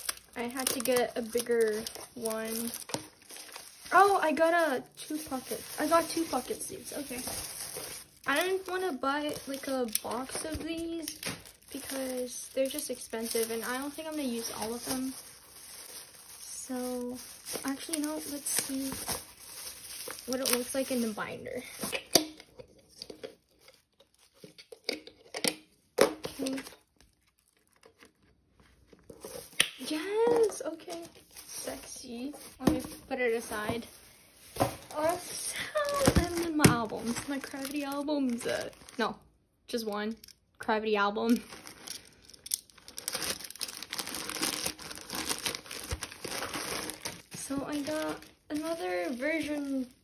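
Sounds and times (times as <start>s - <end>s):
plastic mailer crinkling: 0.0s - 22.3s, 26.2s - 39.2s, 41.2s - 50.0s
plastic sleeve rustling: 0.0s - 25.0s, 26.2s - 40.3s, 41.2s - 50.0s.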